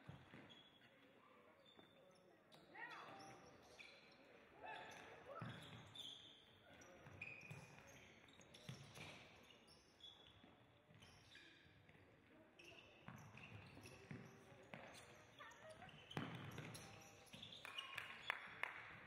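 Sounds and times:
shoes squeaking on hard floor: 12.6s - 17.9s.

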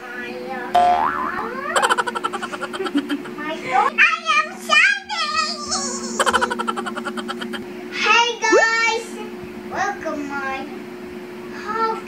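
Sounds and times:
cartoon boing sound effect: 0.8s - 3.3s.

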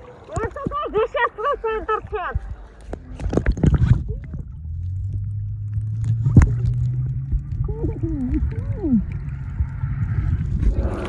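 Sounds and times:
low hum through water: 0.0s - 11.0s
water crackling and bubbling: 0.0s - 11.0s.

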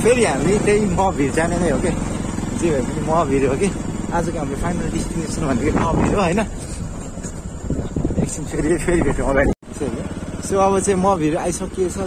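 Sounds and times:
motorcycle engine running at low speed: 0.0s - 12.0s
people talking: 0.0s - 12.0s.

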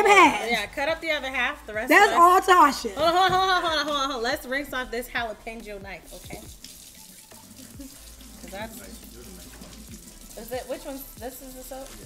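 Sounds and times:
faucet running over knife: 0.0s - 12.0s.

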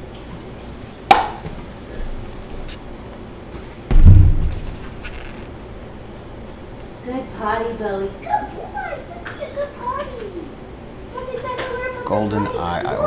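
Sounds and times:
heavy low thump: 3.9s - 5.0s.

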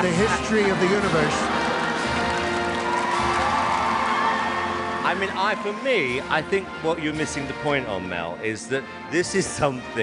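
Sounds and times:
audience laughing and cheering: 0.0s - 6.8s
background music: 0.0s - 10.0s.

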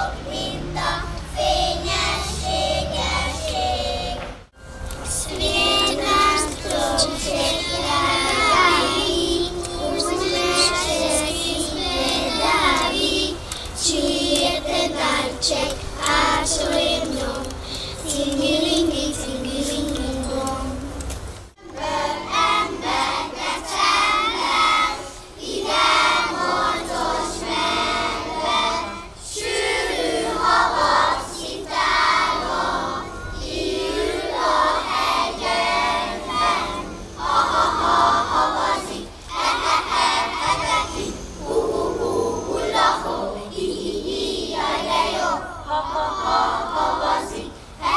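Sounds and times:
young children singing: 0.0s - 47.9s.

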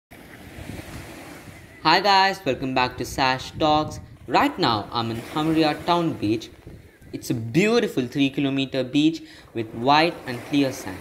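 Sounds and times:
small waves washing on sand: 0.1s - 1.8s, 4.4s - 7.4s, 9.1s - 11.0s
wind buffeting microphone: 0.2s - 8.5s.

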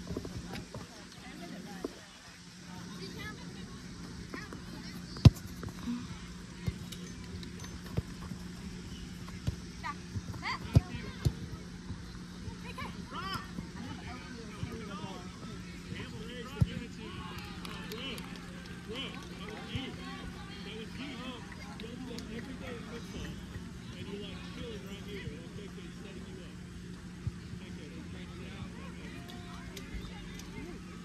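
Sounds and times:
soccer ball kicked on turf: 4.4s - 6.0s, 9.2s - 12.1s.

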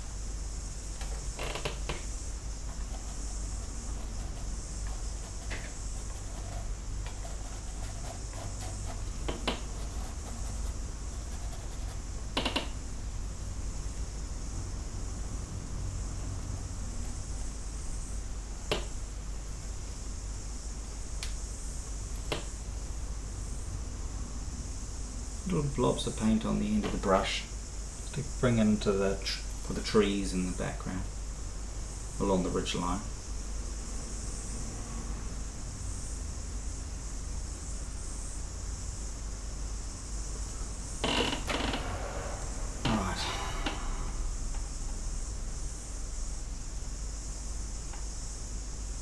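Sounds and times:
steady hiss: 0.0s - 49.0s
low hum: 40.4s - 46.0s.

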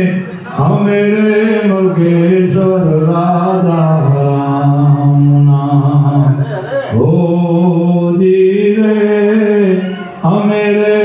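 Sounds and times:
man singing a slow chant: 0.0s - 11.0s.

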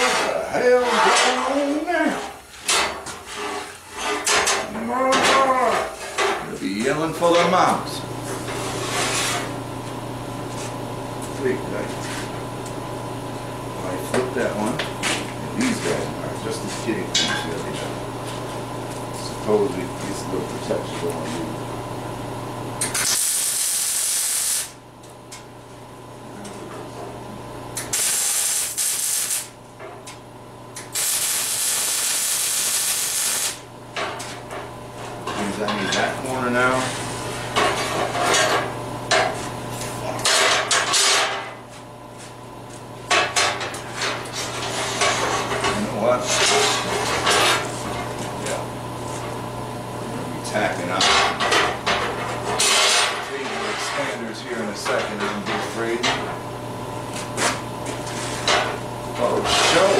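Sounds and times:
steady low hum: 0.0s - 59.9s
electric arc welding: 22.8s - 24.8s, 27.8s - 29.6s, 30.8s - 33.7s.

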